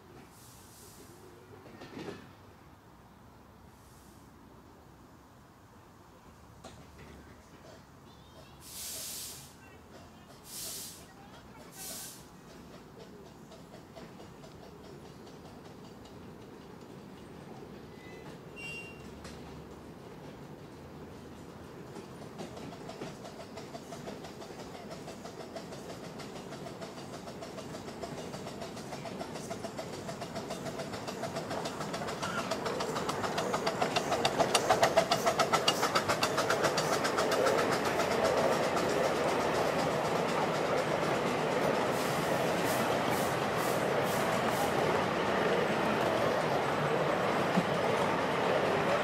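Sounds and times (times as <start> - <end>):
carriages rolling on track: 5.4 - 49.0
steam locomotive exhaust beats: 21.7 - 49.0
wheel clicks: 23.2 - 41.6.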